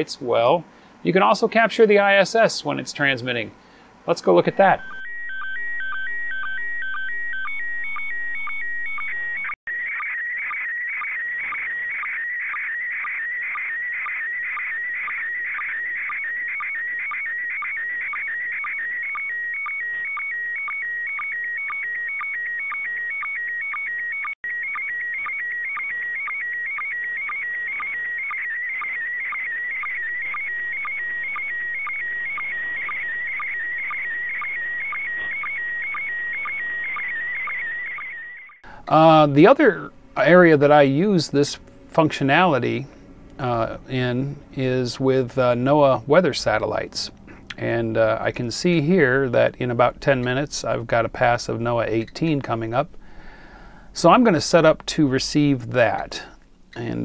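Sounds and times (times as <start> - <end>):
warbling chirping radio tones: 4.2 - 38.6.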